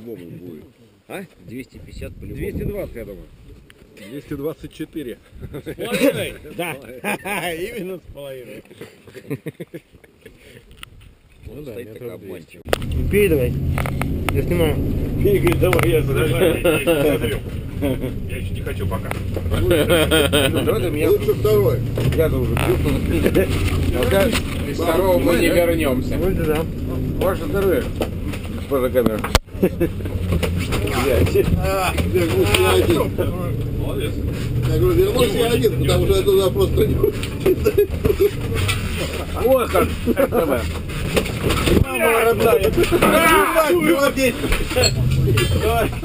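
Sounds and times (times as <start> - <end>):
faint men's voices: 11.4 - 40.8
vehicle cabin rumble: 12.7 - 46.0.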